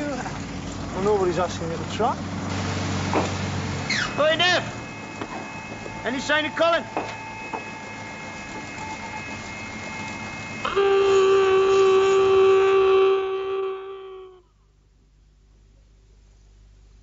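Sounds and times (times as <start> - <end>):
electric horn blast: 2.5 - 14.4.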